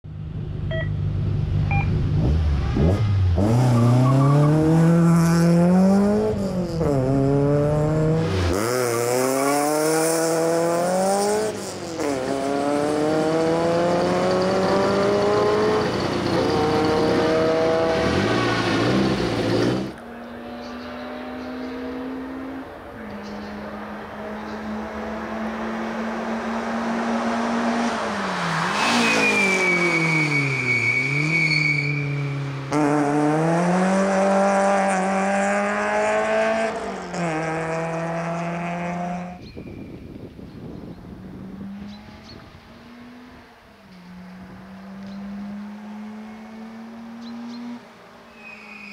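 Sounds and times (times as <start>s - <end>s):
racing car engine accelerating: 1.5s - 39.4s, 41.4s - 47.8s.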